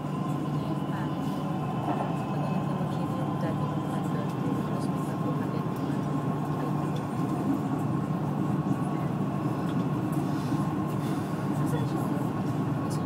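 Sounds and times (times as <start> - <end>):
train rumble inside carriage: 0.0 - 13.0.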